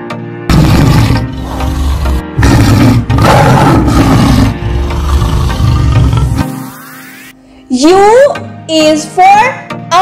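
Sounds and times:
background music: 0.0 - 10.0
tiger growling and roaring: 0.5 - 6.5.

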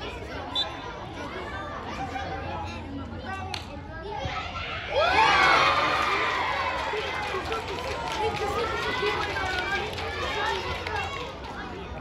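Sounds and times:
children chattering: 0.0 - 12.0
children shouting and cheering: 4.1 - 12.0.

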